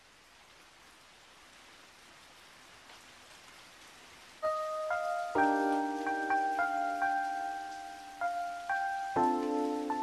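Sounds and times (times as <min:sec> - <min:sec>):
scattered raindrops: 0:00.0 - 0:10.0
steady hiss of falling rain: 0:00.0 - 0:10.0.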